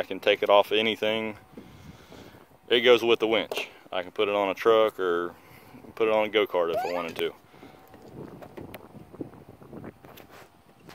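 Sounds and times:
wind buffeting microphone: 0:01.4 - 0:02.7, 0:07.1 - 0:10.9.

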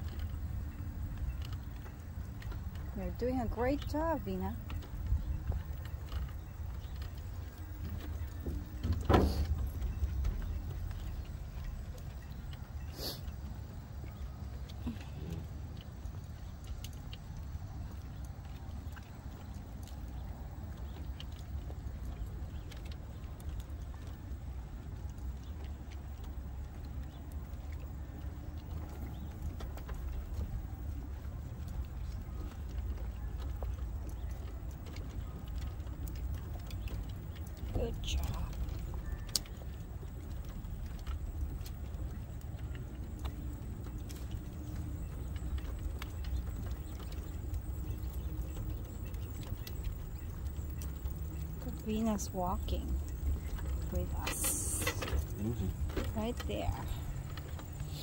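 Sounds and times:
scooter wheels rolling on wooden planks: 0:00.0 - 0:58.0.

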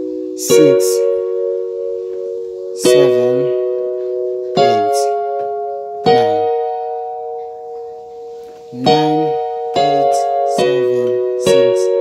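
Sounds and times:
keyboard chord: 0:00.0 - 0:12.0.

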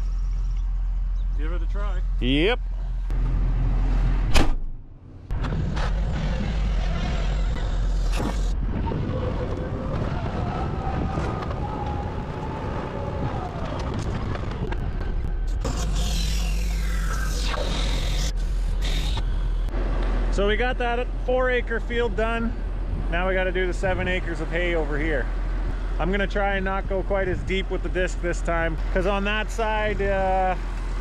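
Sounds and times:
harrow clanking and whining: 0:02.9 - 0:12.0.

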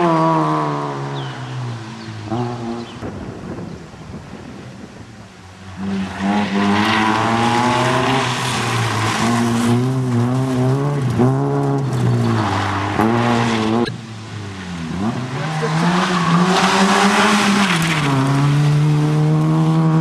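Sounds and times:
car engine revving hard: 0:14.8 - 0:20.0.

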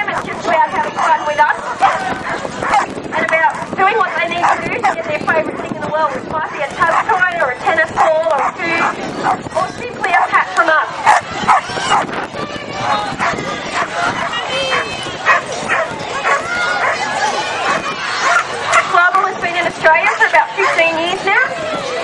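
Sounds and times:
people's voices: 0:00.0 - 0:22.0
dogs barking: 0:00.8 - 0:05.0, 0:06.8 - 0:07.2, 0:07.9 - 0:09.4, 0:11.0 - 0:12.1, 0:13.2 - 0:18.9, 0:20.0 - 0:21.0
dogs yipping: 0:00.8 - 0:05.0, 0:06.8 - 0:07.2, 0:07.9 - 0:09.4, 0:11.0 - 0:12.1, 0:13.1 - 0:18.9, 0:20.0 - 0:22.0.

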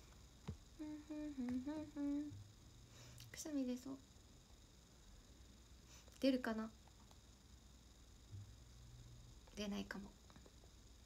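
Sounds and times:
woman humming: 0:00.8 - 0:02.5.

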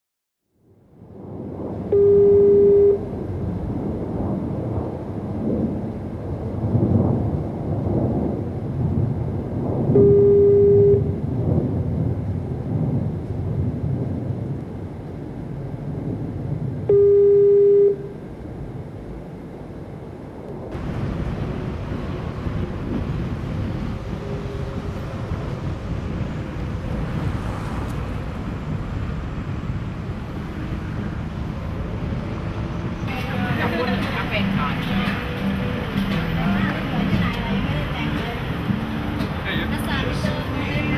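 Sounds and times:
continuous rumbling noise: 0:00.5 - 0:40.9
electronic beep tone: 0:02.0 - 0:03.1, 0:10.0 - 0:11.2, 0:16.9 - 0:18.1.

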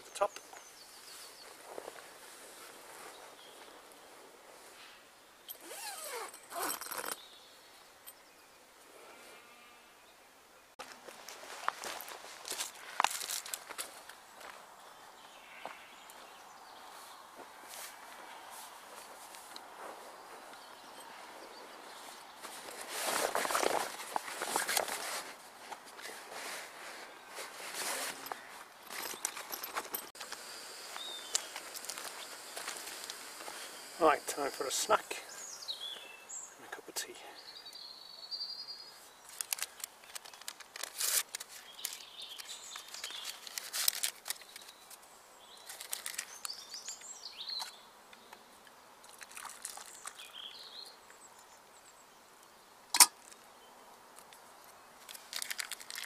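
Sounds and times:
footsteps on grass: 0:00.6 - 0:04.7, 0:10.8 - 0:36.1
zips being worked: 0:05.5 - 0:07.2
canvas rustling: 0:05.6 - 0:07.2, 0:17.0 - 0:30.2.

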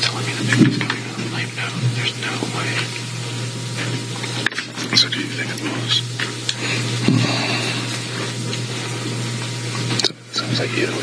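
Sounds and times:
low hum: 0:00.0 - 0:11.0
steady hiss: 0:00.0 - 0:11.0.

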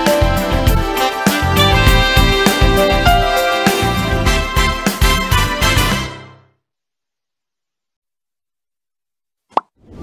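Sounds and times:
electronic music: 0:00.0 - 0:06.1.

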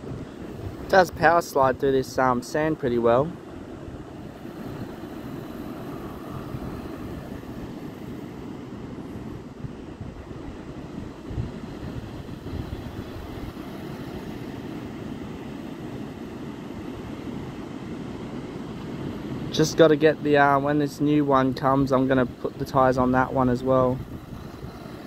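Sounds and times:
wind buffeting microphone: 0:00.0 - 0:19.6, 0:21.6 - 0:25.0
surf washing: 0:00.0 - 0:25.0.

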